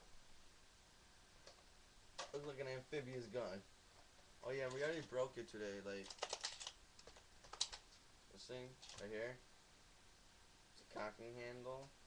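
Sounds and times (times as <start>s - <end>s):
toy gun clicks and rattles: 6.0s - 7.8s.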